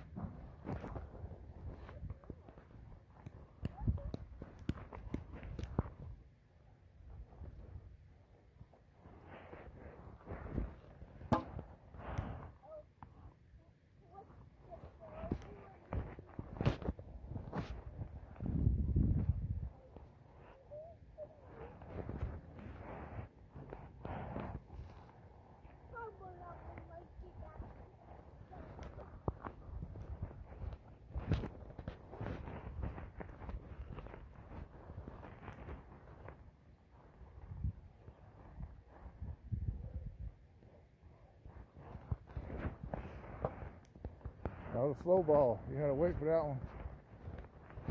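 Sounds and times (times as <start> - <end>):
footsteps on grass: 0.0 - 6.2, 14.1 - 20.5, 21.4 - 40.0, 40.6 - 47.9
low rumble on microphone: 14.2 - 20.8.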